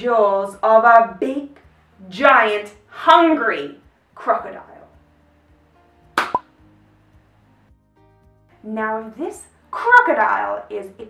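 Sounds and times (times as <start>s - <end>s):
faint background music: 0.0s - 11.0s
sharp snap sound effect: 6.2s - 6.5s.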